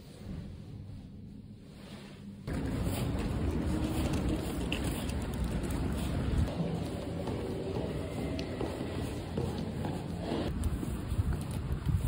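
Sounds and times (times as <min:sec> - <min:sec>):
wind buffeting microphone: 0:10.4 - 0:12.0.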